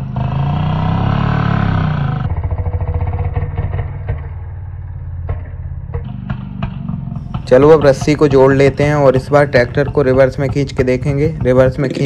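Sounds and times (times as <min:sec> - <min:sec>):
slowed motorcycle engine revving: 0:00.0 - 0:12.0.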